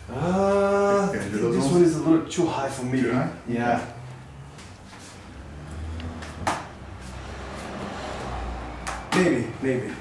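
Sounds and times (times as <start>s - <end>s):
hands slapping wooden boxes: 6.2s - 6.7s, 8.8s - 9.3s.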